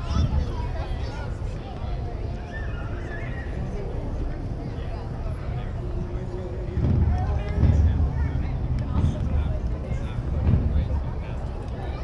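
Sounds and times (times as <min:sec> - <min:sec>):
distant voices of passers-by: 0:00.0 - 0:12.0
low rumble: 0:05.7 - 0:11.8.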